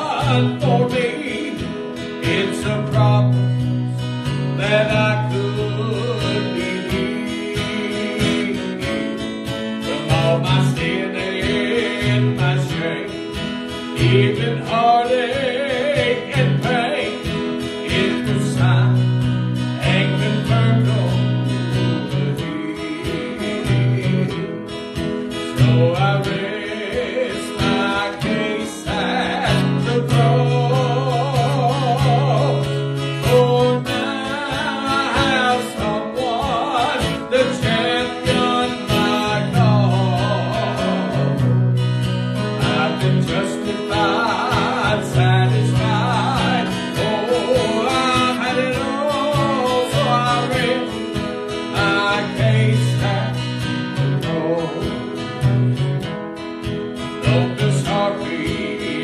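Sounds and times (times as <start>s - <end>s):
man singing gospel song: 0.0s - 41.8s, 42.4s - 55.6s, 57.2s - 59.0s
strummed acoustic guitar: 0.0s - 59.0s.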